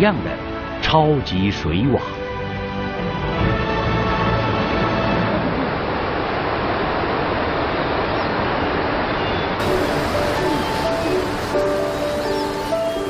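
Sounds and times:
background music: 0:00.0 - 0:05.6, 0:09.6 - 0:13.0
loud rush of water: 0:04.4 - 0:13.0.

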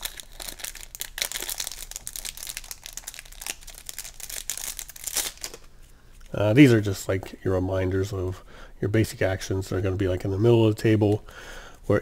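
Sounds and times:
plastic wrapping crinkling: 0:00.0 - 0:06.4.

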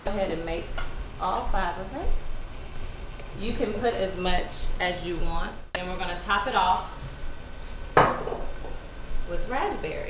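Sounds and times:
bottle knocking on stone countertop: 0:08.0 - 0:08.5.

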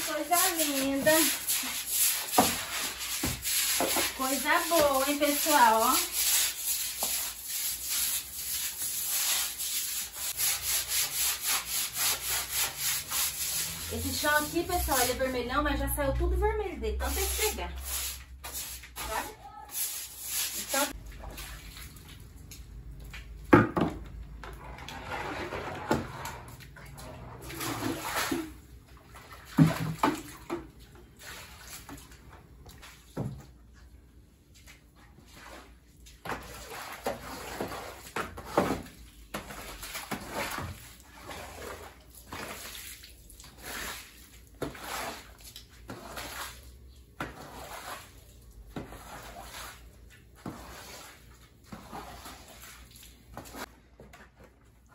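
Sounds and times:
broom scrubbing wet floor: 0:00.0 - 0:15.9, 0:16.8 - 0:22.5, 0:24.5 - 0:30.3, 0:34.5 - 0:53.8
water sloshing: 0:20.5 - 0:33.6.

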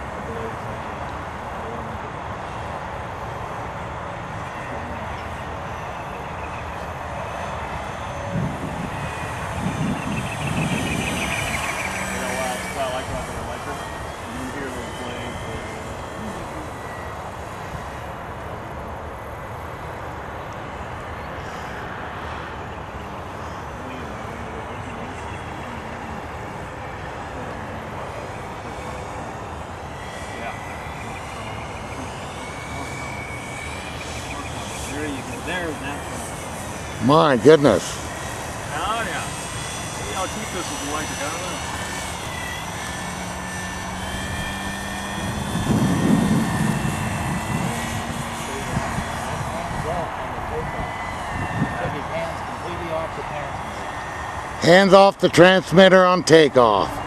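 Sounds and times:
faint gliding whine: 0:00.0 - 0:57.0
model aircraft motor drone: 0:00.0 - 0:57.0.

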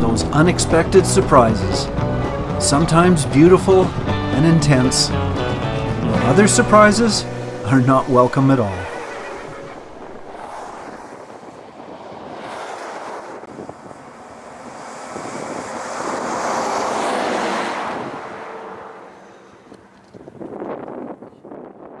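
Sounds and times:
wind buffeting microphone: 0:00.0 - 0:18.8, 0:19.4 - 0:22.0
truck passing at speed: 0:00.0 - 0:21.0
rush of noise: 0:01.2 - 0:19.2.

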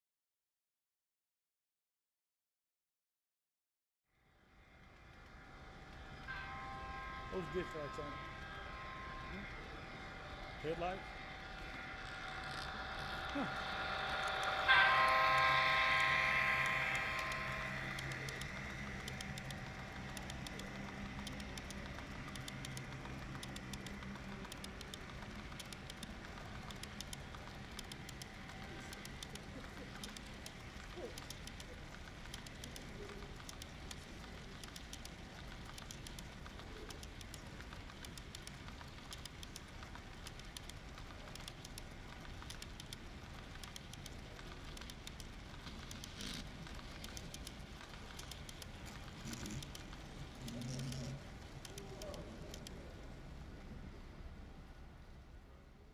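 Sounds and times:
train wheels clicking on track: 0:04.8 - 0:53.9
train horn blast: 0:14.5 - 0:17.9.

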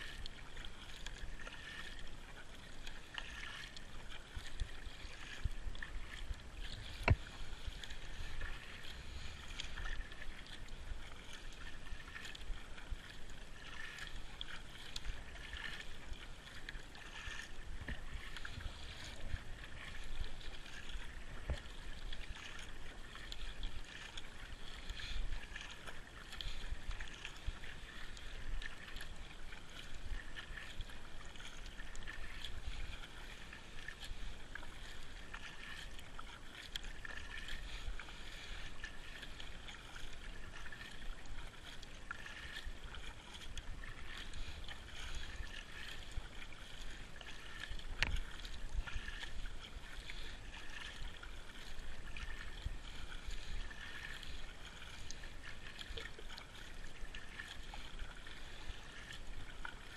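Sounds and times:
kayak paddle splashing: 0:00.0 - 0:59.9
water dripping off paddle: 0:00.0 - 0:59.9.

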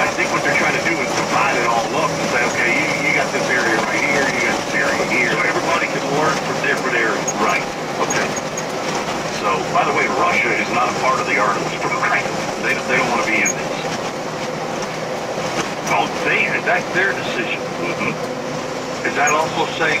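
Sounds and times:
radio voices through car speakers: 0:00.0 - 0:08.6, 0:09.2 - 0:14.1, 0:15.8 - 0:18.3, 0:19.0 - 0:20.0
road and engine noise: 0:00.0 - 0:20.0.

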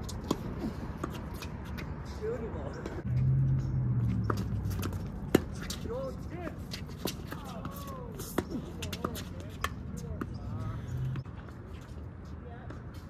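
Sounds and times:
tennis ball hit by racquets: 0:03.6 - 0:05.9.

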